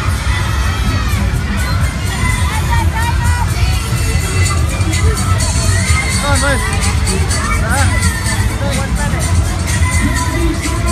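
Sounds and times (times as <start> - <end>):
children shouting excitedly: 0.0 - 9.0
constant low rumble: 0.0 - 10.9.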